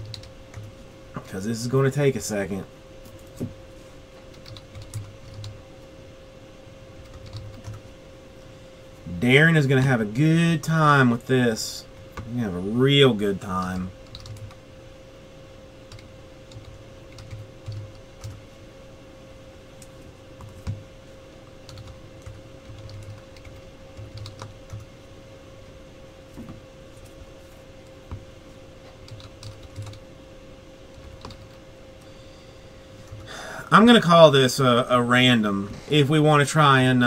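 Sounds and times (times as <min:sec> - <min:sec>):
keyboard typing: 0:00.0 - 0:00.7, 0:04.3 - 0:05.6, 0:07.0 - 0:07.9, 0:14.0 - 0:14.6, 0:15.9 - 0:18.4, 0:19.8 - 0:20.8, 0:21.6 - 0:24.9, 0:29.0 - 0:30.0, 0:30.9 - 0:31.6
faint hum: 0:00.0 - 0:37.0.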